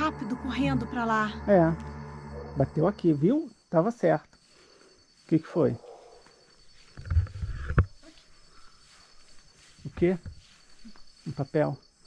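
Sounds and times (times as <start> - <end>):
crickets chirring: 0.0 - 12.0
microphone handling noise: 6.9 - 8.0.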